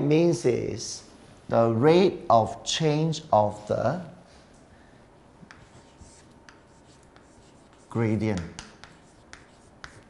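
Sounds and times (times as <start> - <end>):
chalk tapping on chalkboard: 5.4 - 10.0
chalk scratching on chalkboard: 5.5 - 10.0.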